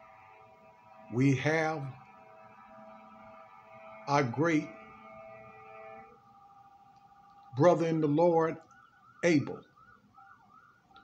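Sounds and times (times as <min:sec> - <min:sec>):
faint steady drone: 0:00.0 - 0:11.0.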